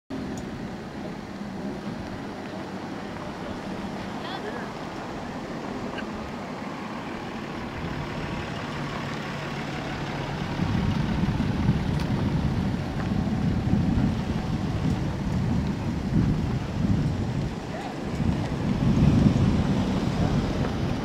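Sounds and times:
pickup truck driving past: 0:00.1 - 0:21.0.

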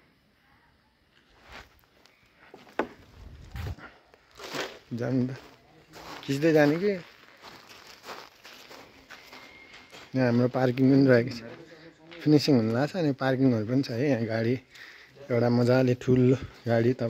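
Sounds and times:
footsteps: 0:01.1 - 0:12.4
man's voice: 0:04.9 - 0:07.2, 0:10.1 - 0:17.0.

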